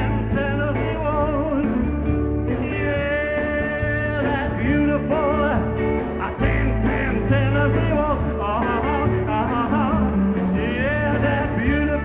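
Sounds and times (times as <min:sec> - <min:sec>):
bass: 0:00.0 - 0:12.0
electric guitar: 0:00.0 - 0:12.0
keyboard: 0:00.0 - 0:12.0.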